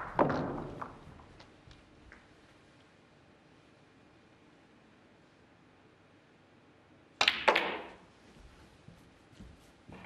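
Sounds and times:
cue tip striking ball: 0.0s - 1.4s, 7.2s - 8.0s
balls clattering together: 0.0s - 2.3s, 7.2s - 8.1s
cue ball cracking into pack: 0.0s - 2.3s, 7.2s - 8.0s.

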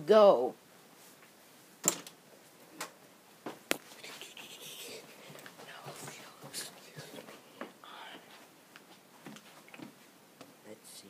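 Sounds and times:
soft rustling: 0.8s - 10.6s.

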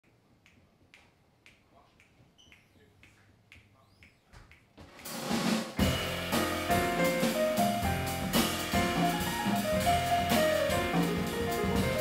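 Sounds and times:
finger snaps: 0.0s - 5.2s.

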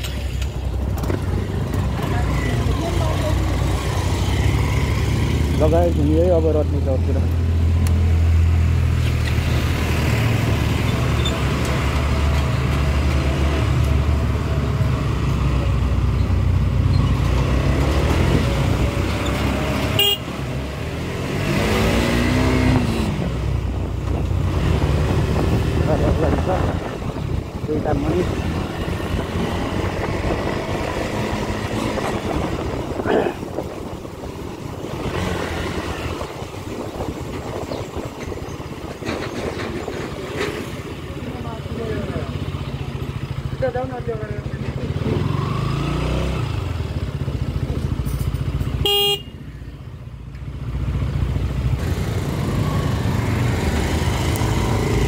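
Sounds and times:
vehicle horns honking: 19.9s - 20.3s, 48.8s - 49.4s.

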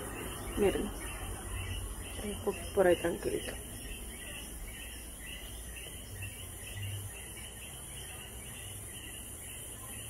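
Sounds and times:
insects buzzing: 0.0s - 10.0s
insects chirping: 0.0s - 10.0s.

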